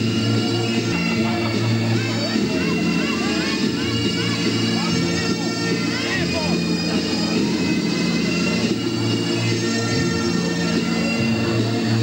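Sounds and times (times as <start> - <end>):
crowd voices: 0.0 - 12.0
bagpipes playing: 0.4 - 11.9.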